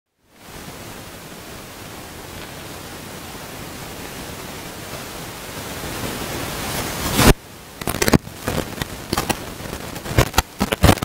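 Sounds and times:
static-like hiss: 0.1 - 11.0.

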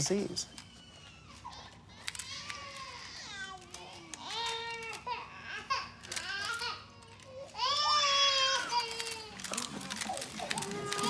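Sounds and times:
small child cooing and crying: 0.9 - 11.0.

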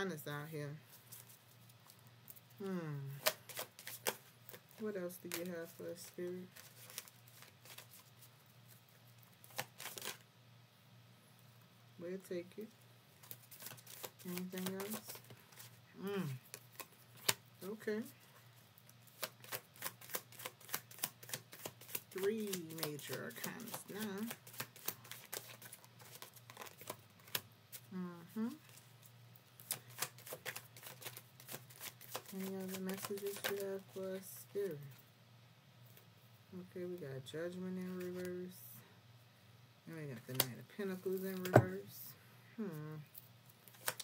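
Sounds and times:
faint low hum: 0.0 - 44.0
cards shuffling and rustling: 0.9 - 10.2, 13.2 - 18.1, 18.9 - 27.9, 29.6 - 34.1, 37.8 - 38.3, 43.1 - 44.0.

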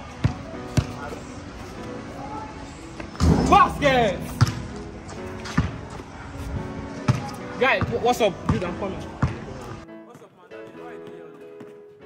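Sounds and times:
faint music: 0.0 - 12.0
basketball bouncing on hard court: 4.4 - 4.8, 7.1 - 9.5.

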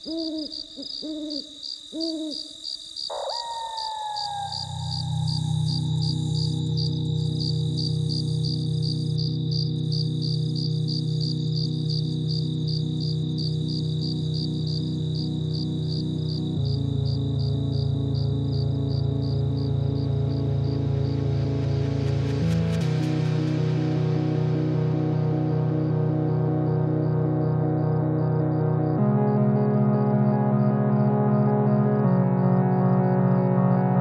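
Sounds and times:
cricket-like chirping: 0.0 - 21.2
synth pad and bass chord: 4.6 - 34.0.

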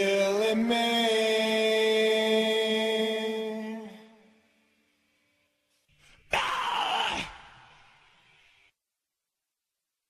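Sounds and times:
man screaming harshly: 6.3 - 7.8.

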